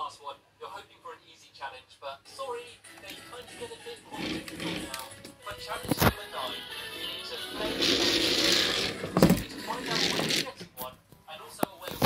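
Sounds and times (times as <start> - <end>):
toy train motor whirring: 4.1 - 5.0, 7.6 - 10.5.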